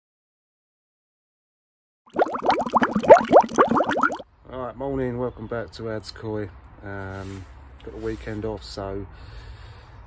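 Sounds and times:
bubbling plopping water: 2.1 - 4.2.

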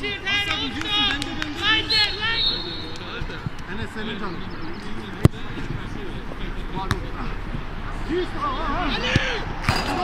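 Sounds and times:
players shouting: 0.0 - 4.4, 7.0 - 10.0.

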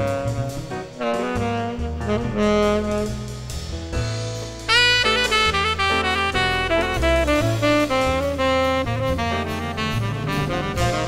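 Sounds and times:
saxophone and brass horns: 0.0 - 3.9, 4.6 - 11.0
bass: 0.0 - 11.0.

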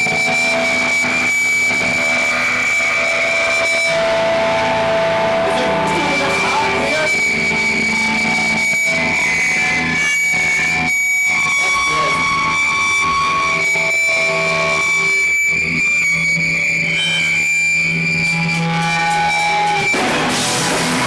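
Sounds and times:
distorted electric guitars: 0.0 - 21.0.

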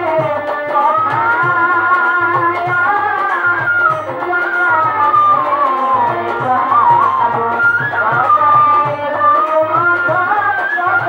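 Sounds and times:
hand drum beat: 0.0 - 11.0
violin folk melody: 0.0 - 11.0.

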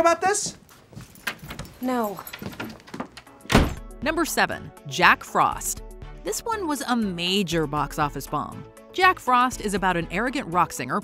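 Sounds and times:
door slamming: 1.2 - 3.8.

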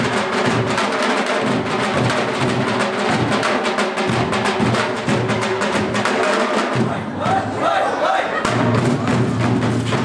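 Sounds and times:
group of dhol drums playing: 0.0 - 7.6, 8.3 - 10.0.

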